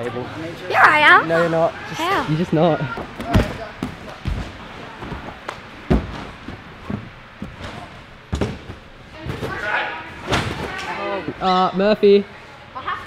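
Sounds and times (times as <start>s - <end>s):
heavy thuds on trampoline and mats: 3.0s - 10.8s.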